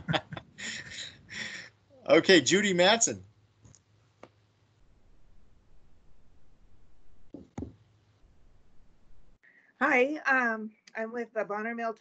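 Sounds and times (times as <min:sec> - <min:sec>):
faint low hum: 0:00.0 - 0:09.8.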